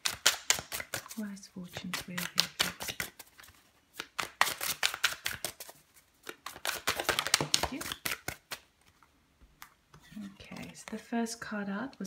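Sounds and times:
cards shuffled by hand: 0.0s - 11.0s.

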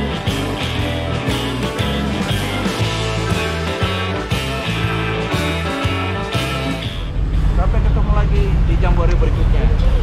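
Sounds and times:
car engine rumble: 6.8s - 10.0s.

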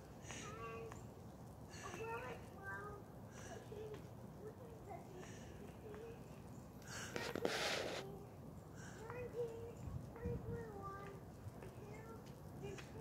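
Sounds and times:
faint voices: 1.7s - 13.0s
rustling: 6.9s - 8.2s.

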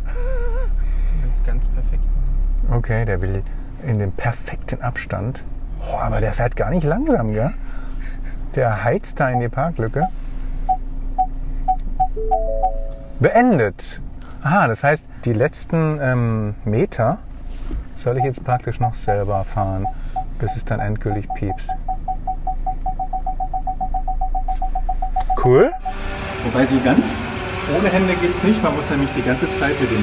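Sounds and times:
car engine hum: 0.0s - 30.0s
parking sensor warning beeps: 9.3s - 13.1s, 18.1s - 26.0s.

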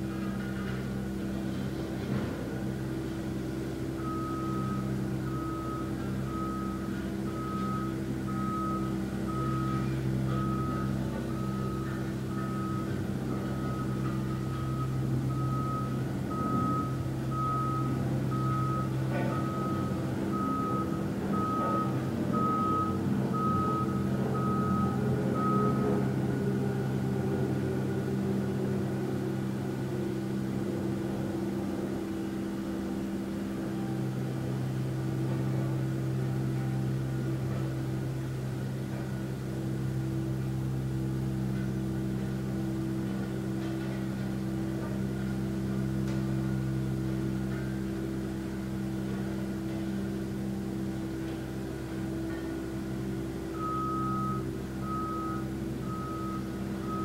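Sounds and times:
steady low hum: 0.0s - 57.0s
vehicle reversing alarm beeping: 0.0s - 57.0s.

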